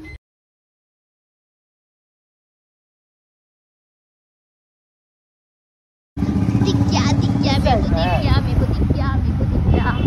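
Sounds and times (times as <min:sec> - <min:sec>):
motorcycle engine rumble: 0:06.2 - 0:10.0
voices talking: 0:06.2 - 0:10.0.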